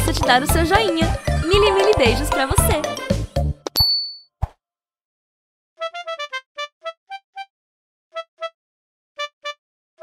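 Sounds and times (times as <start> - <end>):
high bell ding: 3.8 - 4.2.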